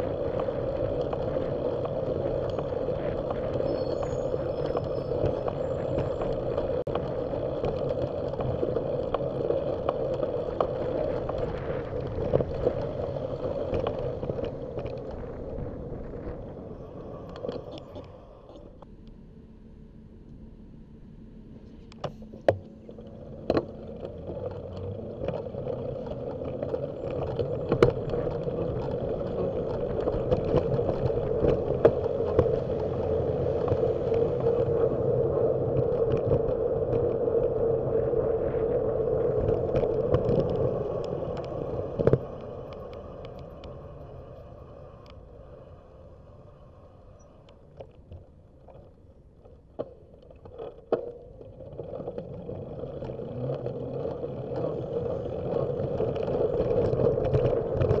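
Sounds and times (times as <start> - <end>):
road and traffic noise: 0.0 - 58.0.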